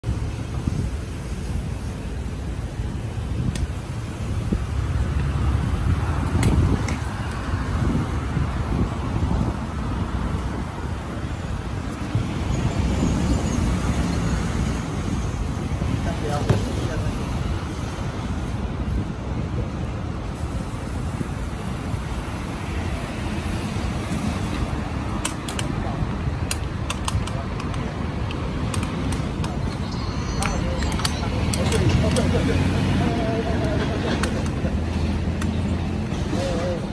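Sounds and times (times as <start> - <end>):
road traffic rumble: 0.0 - 36.9
faint high chirps: 29.7 - 31.4.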